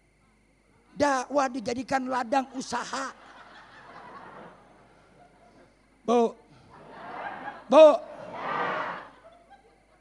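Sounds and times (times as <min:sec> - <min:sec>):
audience of women laughing: 0:02.4 - 0:05.8, 0:06.7 - 0:10.0.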